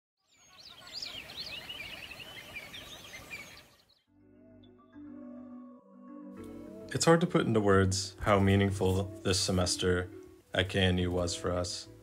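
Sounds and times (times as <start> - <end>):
small birds chirping and singing: 0.2 - 4.1.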